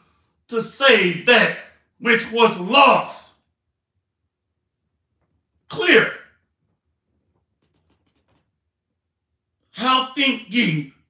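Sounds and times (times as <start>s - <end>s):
man speaking: 0.5s - 3.4s, 5.7s - 6.3s, 9.8s - 11.0s.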